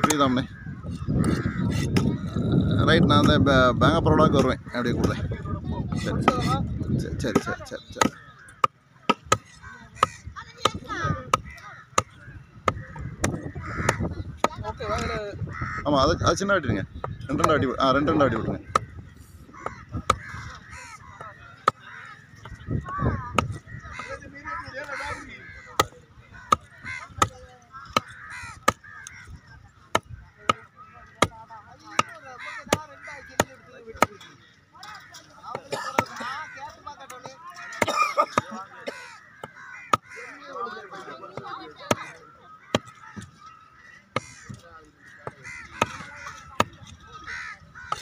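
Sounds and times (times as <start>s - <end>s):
cleaver chopping on wooden block: 7.3s - 14.6s, 19.7s - 20.5s.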